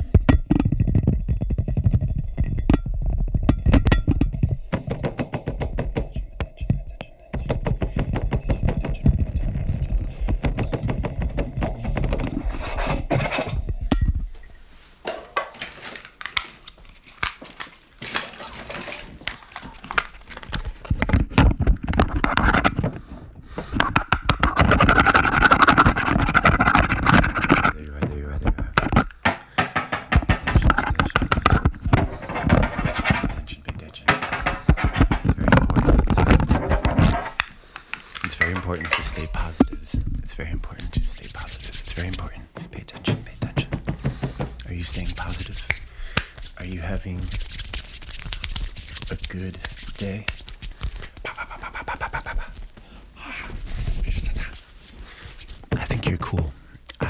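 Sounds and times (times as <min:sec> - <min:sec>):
tapping on objects: 0:00.0 - 0:12.4, 0:23.7 - 0:39.8, 0:42.6 - 0:46.4
handling of objects: 0:00.0 - 0:56.6
scratching on objects: 0:05.8 - 0:15.0, 0:15.6 - 0:52.8.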